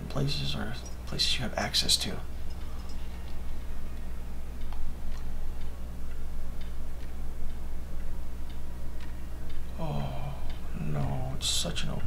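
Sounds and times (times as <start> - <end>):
low drone: 9.7 - 11.0.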